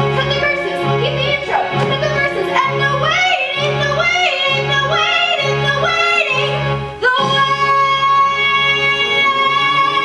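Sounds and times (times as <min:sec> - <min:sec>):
backing music: 0:00.0 - 0:10.0
woman singing a show tune: 0:00.2 - 0:10.0.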